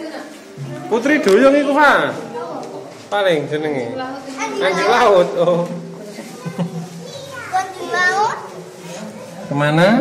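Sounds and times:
children chattering: 4.0 - 10.0.

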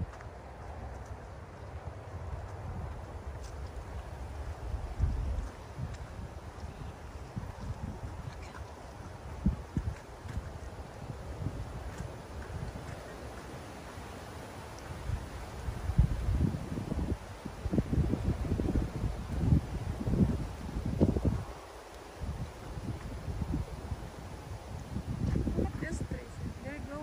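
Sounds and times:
leaves rustling: 0.0 - 27.0
wind buffeting microphone: 0.0 - 27.0.

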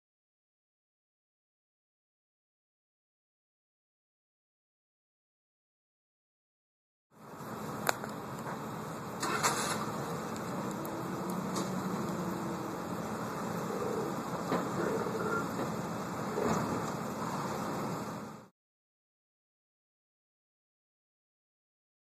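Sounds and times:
vehicle engines idling: 7.2 - 18.5.

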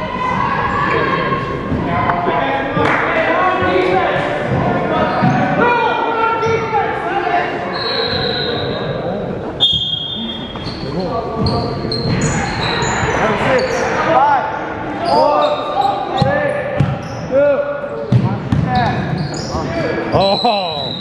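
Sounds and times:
sneakers squeaking on gym floor: 9.6 - 14.0, 15.0 - 21.0
players calling out: 9.9 - 21.0
basketball bouncing: 18.1 - 18.7.

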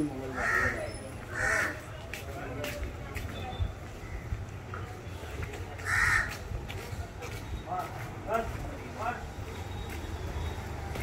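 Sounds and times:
crow cawing: 0.3 - 1.8, 5.8 - 6.4.

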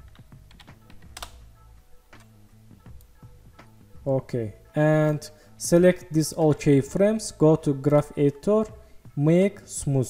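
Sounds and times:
computer keyboard and mouse clicking: 0.0 - 1.4
quiet background music: 0.0 - 10.0.

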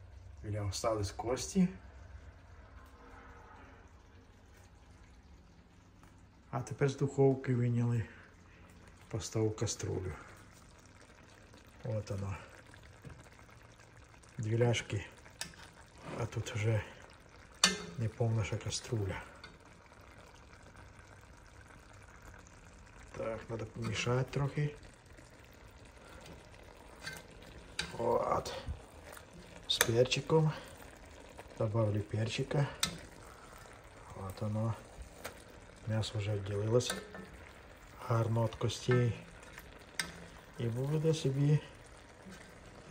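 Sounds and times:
stew simmering in a pot: 0.0 - 42.9.

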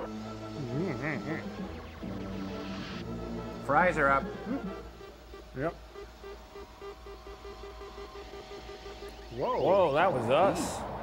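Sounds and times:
steady hum: 0.4 - 11.0
pulsing electronic beep: 4.4 - 10.5.

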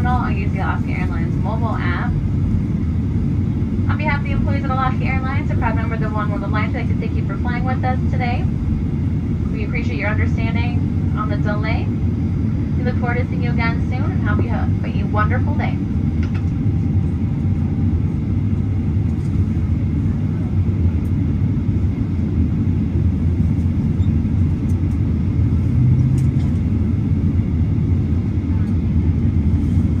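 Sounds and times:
airliner cabin engine rumble: 0.0 - 30.0.

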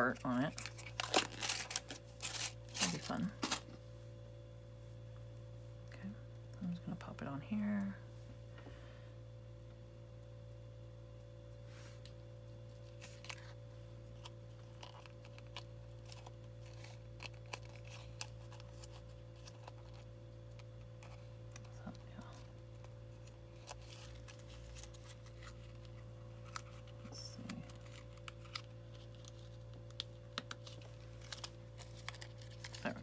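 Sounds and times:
low electrical hum: 0.0 - 33.0
paper rustling: 0.5 - 3.7, 22.8 - 27.1.

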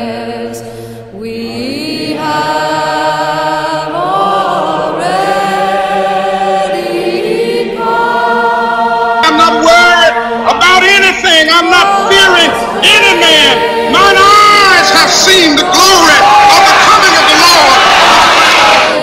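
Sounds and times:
choir singing held chords: 0.0 - 19.0.

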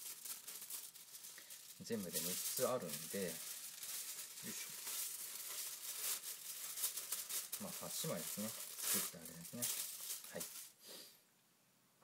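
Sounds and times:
aluminium foil crinkling: 0.0 - 10.8.

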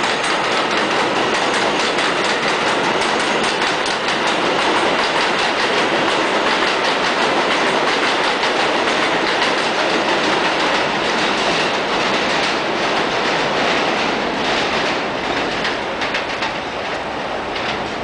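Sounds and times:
subway train rumbling: 0.0 - 18.0
wheels clacking over rail joints: 0.0 - 18.0.

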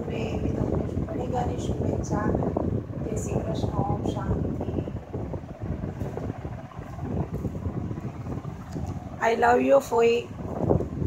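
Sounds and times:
low uneven rumbling: 0.0 - 11.0.

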